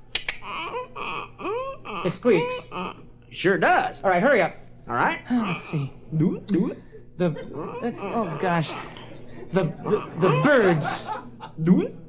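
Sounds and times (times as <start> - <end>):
vocal clicks: 0.1 - 0.6.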